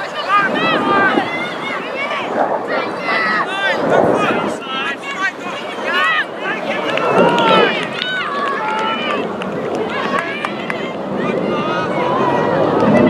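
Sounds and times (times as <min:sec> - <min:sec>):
steady outdoor noise: 0:00.0 - 0:13.0
young voices shouting: 0:00.0 - 0:13.0.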